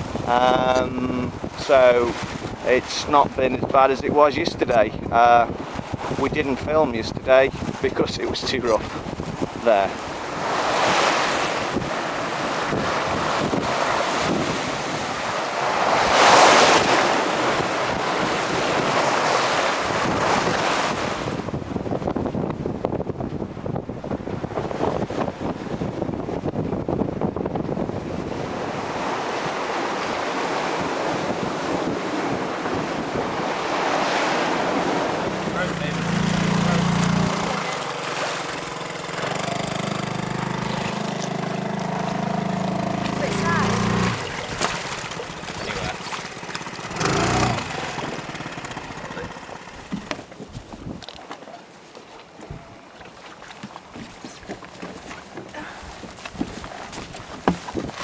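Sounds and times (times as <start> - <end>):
wind buffeting microphone: 0.0 - 51.1, 53.9 - 58.0
sea rushing along hull: 0.0 - 58.0.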